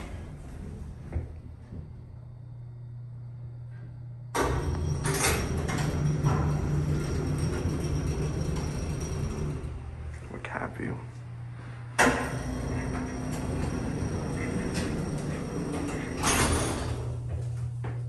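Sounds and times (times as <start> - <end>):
elevator humming: 0.0 - 18.0
elevator doors sliding open: 4.4 - 10.2, 11.9 - 17.6.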